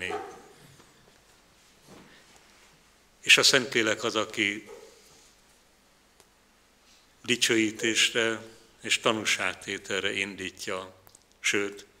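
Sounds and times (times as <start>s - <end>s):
man speaking: 0.0s - 0.5s, 3.2s - 4.9s, 7.2s - 12.0s.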